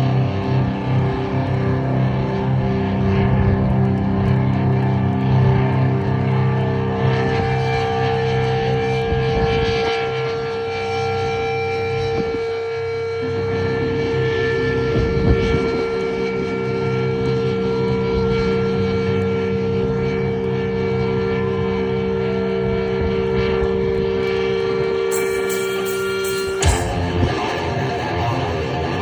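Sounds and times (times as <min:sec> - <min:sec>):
droning electric guitar chord: 0:00.0 - 0:29.0.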